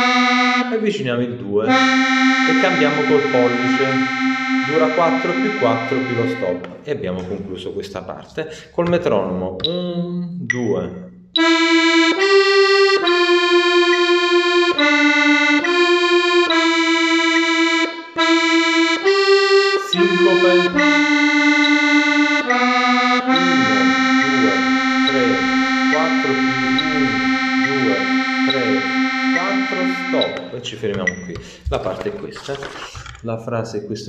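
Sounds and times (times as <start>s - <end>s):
accordion playing slow melody: 0.0s - 0.8s, 1.7s - 6.8s, 11.4s - 30.5s.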